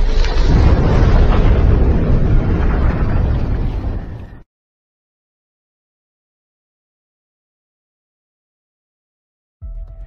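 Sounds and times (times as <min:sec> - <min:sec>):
explosion low rumble: 0:00.0 - 0:04.5.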